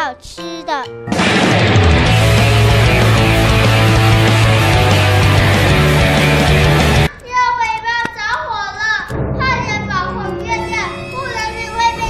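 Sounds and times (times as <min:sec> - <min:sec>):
low background music: 0:00.0 - 0:07.1, 0:09.1 - 0:12.0
child's high wavering voice: 0:07.1 - 0:12.0.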